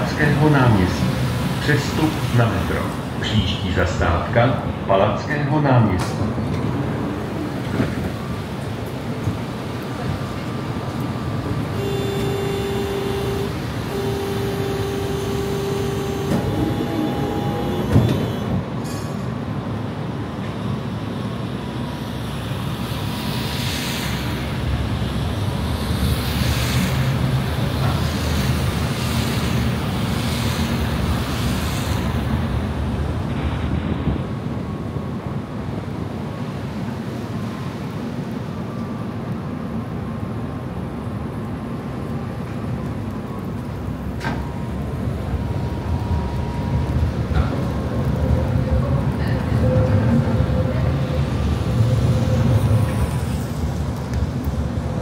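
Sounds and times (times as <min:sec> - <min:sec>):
tram motors and wheels rumbling: 0:00.0 - 0:55.0
tyres hissing on wet road: 0:00.0 - 0:55.0
steady whine: 0:11.7 - 0:18.6.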